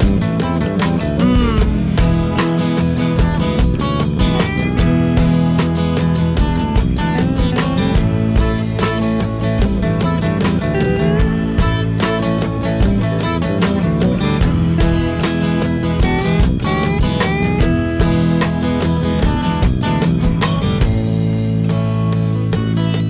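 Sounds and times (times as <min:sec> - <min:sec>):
drum beat: 0:00.0 - 0:23.0
rock guitars sliding notes: 0:00.0 - 0:23.0.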